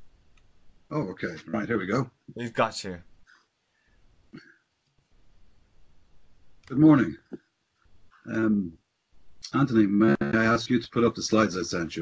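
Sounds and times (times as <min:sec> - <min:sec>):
short vocal sound: 0:10.0 - 0:10.6.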